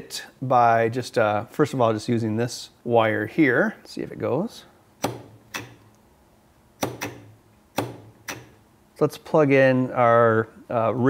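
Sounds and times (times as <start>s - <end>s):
solenoid clacks: 5.0s - 6.0s, 6.8s - 8.6s.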